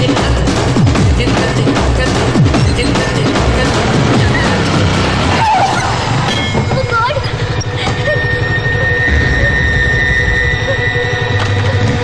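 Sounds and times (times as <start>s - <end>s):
motorcycle engine running: 0.0s - 12.0s
motorcycle tyres skidding: 2.6s - 12.0s.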